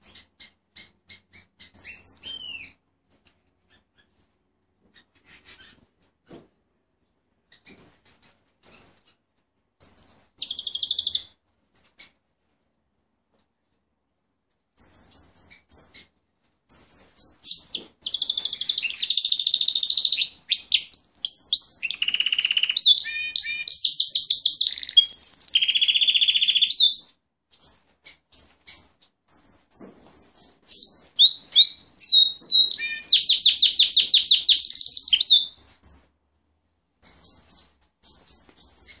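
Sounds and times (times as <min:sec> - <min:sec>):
canary singing trills and chirps: 0:00.0 - 0:02.8, 0:07.5 - 0:09.2, 0:09.8 - 0:11.4, 0:16.7 - 0:36.1, 0:37.0 - 0:39.0.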